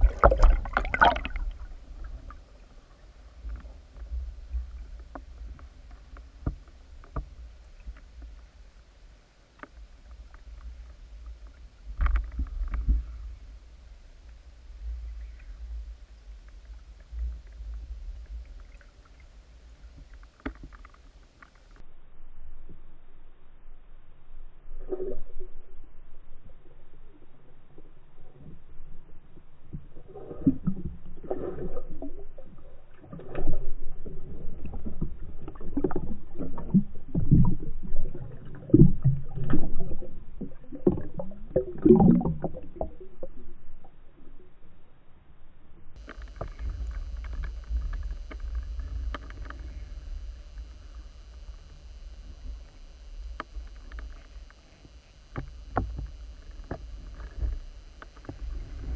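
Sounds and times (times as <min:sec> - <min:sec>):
underwater gurgling surges and knocks: 0:00.0 - 0:08.6, 0:29.7 - 0:44.4, 0:46.0 - 0:58.9
muffled underwater rumbling: 0:00.0 - 0:58.9.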